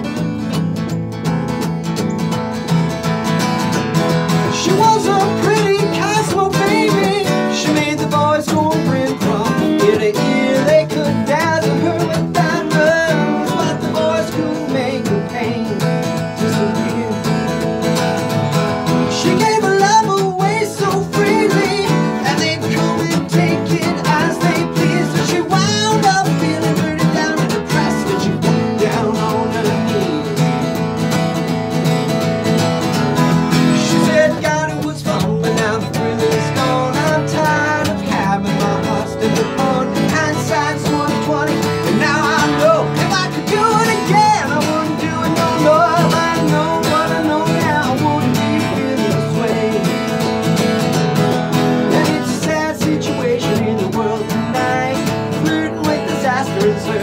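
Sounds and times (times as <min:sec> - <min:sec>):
acoustic guitars strumming: 0:00.0 - 0:57.0
man singing: 0:04.2 - 0:31.1, 0:32.9 - 0:57.0.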